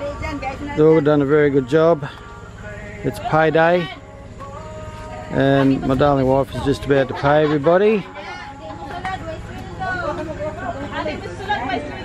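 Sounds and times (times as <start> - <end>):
group of people chattering: 0.0 - 12.0.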